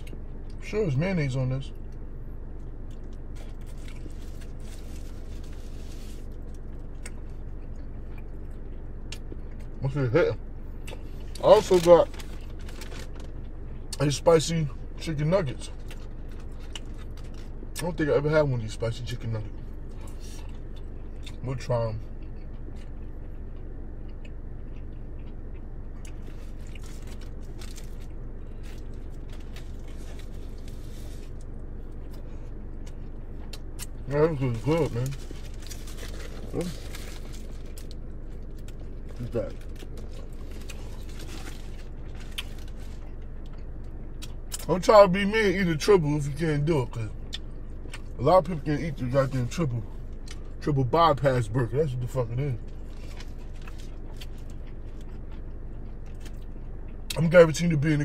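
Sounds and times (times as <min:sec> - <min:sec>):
steady low hum: 0:00.0 - 0:58.0
man biting and chewing: 0:02.6 - 0:09.8, 0:22.1 - 0:44.7, 0:52.6 - 0:57.2
faint crunches: 0:24.0 - 0:44.7, 0:52.6 - 0:56.6.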